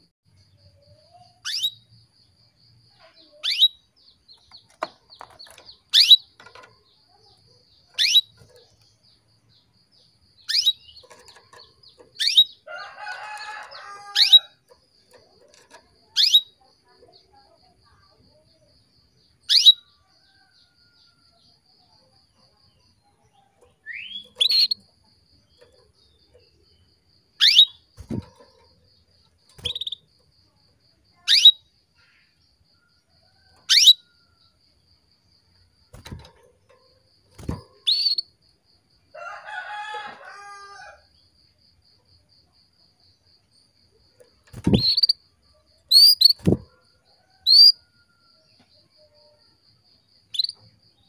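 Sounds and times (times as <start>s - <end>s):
canary chirping: 1.1s - 1.9s, 3.1s - 18.6s, 19.2s - 21.2s, 22.5s - 30.4s, 31.1s - 32.2s, 33.6s - 34.3s, 35.9s - 38.4s, 44.3s - 45.3s, 45.9s - 46.7s, 47.4s - 47.8s, 50.3s - 50.6s
bird hopping on perch: 4.4s - 9.0s, 10.4s - 16.6s, 27.4s - 30.1s, 35.9s - 38.2s, 44.2s - 45.2s, 45.9s - 46.8s
rooster crowing: 12.6s - 14.6s, 39.1s - 41.1s.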